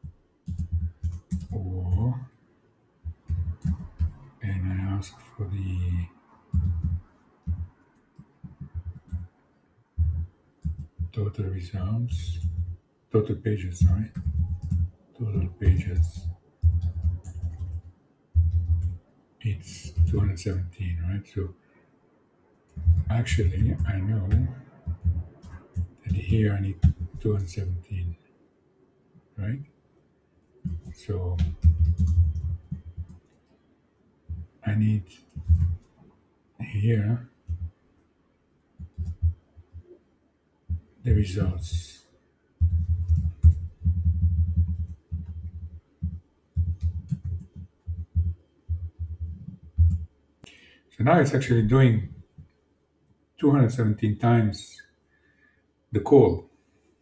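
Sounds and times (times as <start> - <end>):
computer keyboard clicks: 0.4 - 2.1, 6.5 - 7.6, 13.8 - 19.0, 30.6 - 33.6, 38.8 - 39.4, 42.6 - 50.6
man murmuring: 1.5 - 2.2, 4.4 - 6.1, 11.2 - 12.5, 13.2 - 14.2, 15.2 - 16.2, 19.4 - 21.5, 23.0 - 24.5, 26.0 - 28.1, 30.9 - 31.6, 36.6 - 37.2, 41.1 - 42.0, 51.0 - 52.1.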